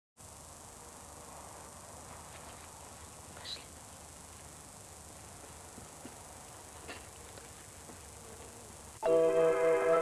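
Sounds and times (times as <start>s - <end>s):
faint tape hiss: 0.2s - 10.0s.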